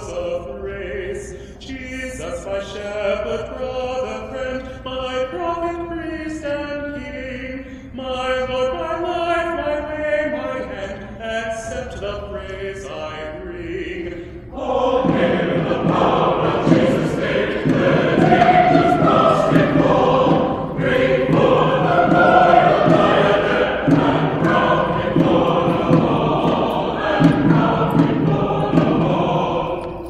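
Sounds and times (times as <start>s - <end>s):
church choir singing: 0.0s - 30.0s.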